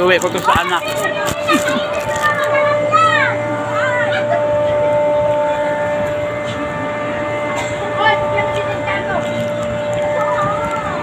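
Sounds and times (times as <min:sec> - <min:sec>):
crowd hubbub: 0:00.0 - 0:11.0
steady hum: 0:00.0 - 0:11.0.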